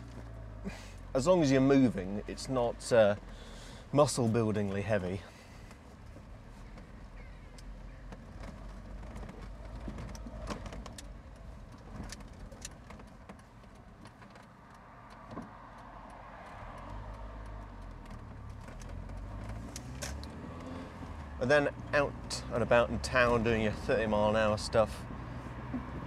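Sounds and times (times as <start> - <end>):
tyres crunching on gravel: 0.0 - 25.0
car engine at low revs: 0.0 - 26.0.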